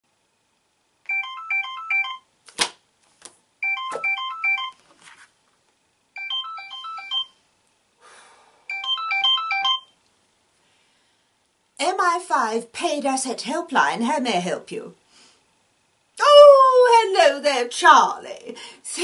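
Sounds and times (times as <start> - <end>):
phone ringtone melody: 1.1 - 2.3, 3.6 - 4.8, 6.2 - 7.4, 8.7 - 10.0.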